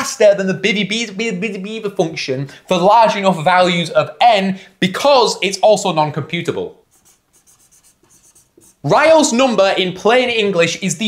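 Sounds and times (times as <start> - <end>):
man speaking: 0.0 - 6.8, 8.8 - 11.0
marker scratching on whiteboard: 6.8 - 8.9.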